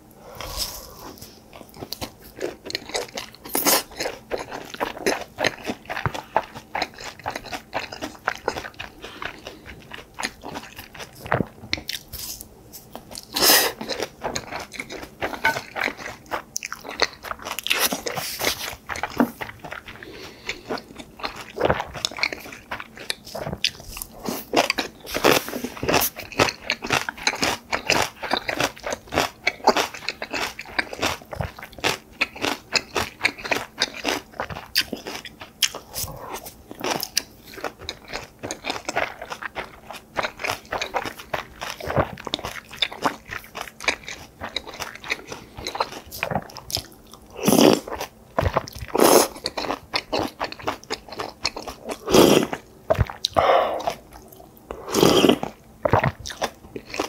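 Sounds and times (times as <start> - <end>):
person chewing and crunching: 0.2 - 57.0.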